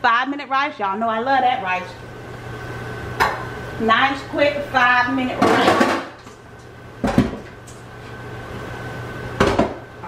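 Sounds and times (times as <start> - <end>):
steady low hum: 0.0 - 10.0
knocks of kitchen items handled: 7.0 - 7.4, 9.4 - 9.8.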